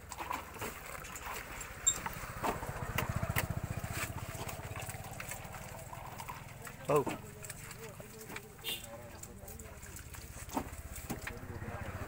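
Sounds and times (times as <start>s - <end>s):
bananas splashing in water: 0.0s - 12.0s.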